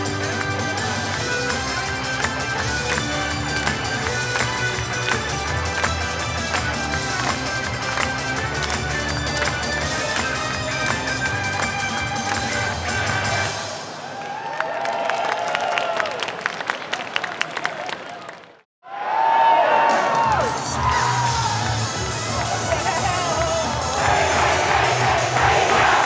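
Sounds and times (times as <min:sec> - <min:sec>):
upbeat pop song over pa: 0:00.0 - 0:13.6
crowd cheering and calling out: 0:00.0 - 0:16.4, 0:17.0 - 0:26.0.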